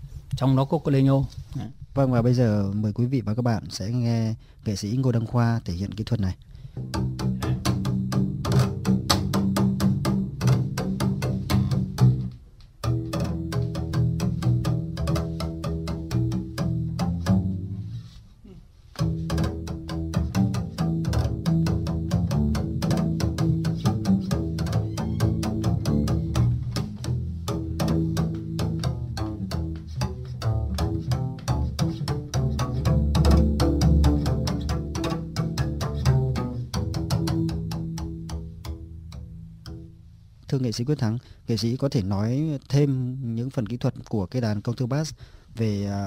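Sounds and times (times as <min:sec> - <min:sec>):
bow stick tapping bass strings: 0:06.6 - 0:18.2, 0:18.9 - 0:40.5.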